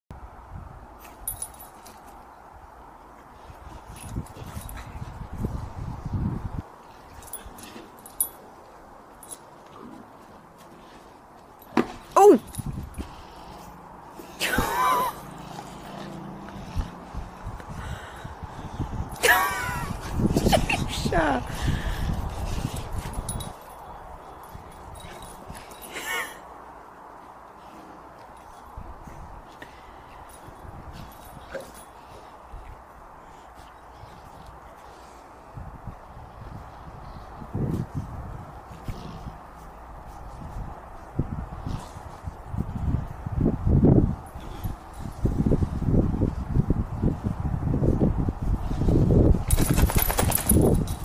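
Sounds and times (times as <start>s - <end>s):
dogs playing and scuffling: 0.9s - 51.0s
metal collar tag jingling: 1.0s - 2.2s, 3.8s - 5.4s, 7.0s - 10.0s, 10.9s - 13.7s, 22.2s - 26.4s, 30.2s - 32.3s, 49.4s - 51.0s.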